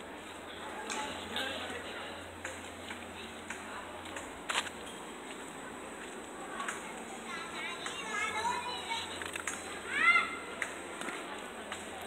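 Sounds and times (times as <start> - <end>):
children calling out: 7.2 - 10.7.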